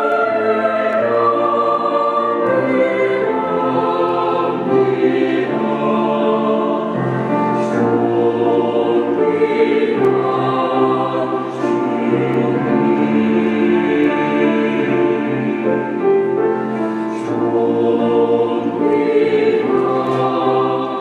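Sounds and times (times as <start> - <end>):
mixed choir singing: 0.0 - 21.0.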